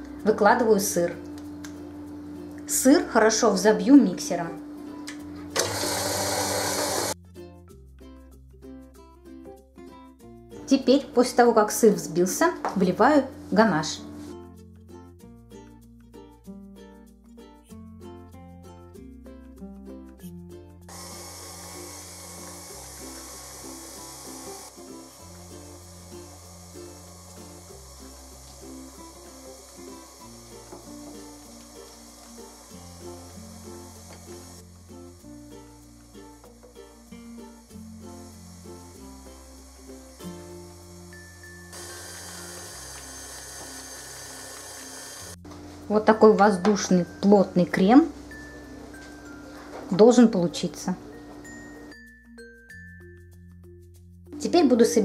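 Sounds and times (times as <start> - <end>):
electric stand mixer whipping: 5.5 - 7.2, 20.9 - 34.9, 37.6 - 45.4.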